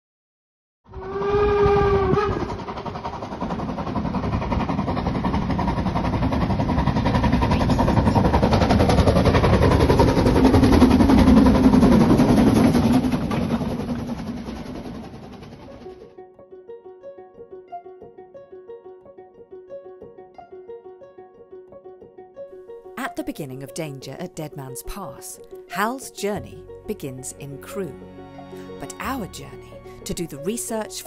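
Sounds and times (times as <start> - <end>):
steam locomotive whistle: 0.9 - 2.9
steam locomotive exhaust beats: 1.0 - 16.1.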